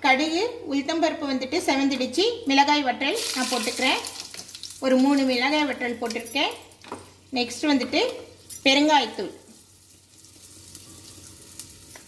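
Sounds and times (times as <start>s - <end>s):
hot oil sizzling: 3.1s - 5.8s, 8.4s - 12.0s.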